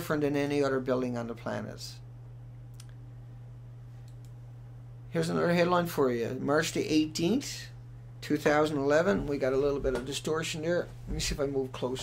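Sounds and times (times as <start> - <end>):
low electrical hum: 0.0 - 12.0
computer mouse clicks: 4.0 - 4.4.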